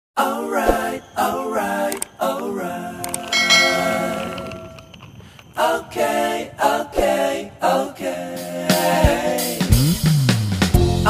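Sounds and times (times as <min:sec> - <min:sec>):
bright bell-like chime: 0:03.3 - 0:05.0
background music with singing: 0:05.7 - 0:11.0.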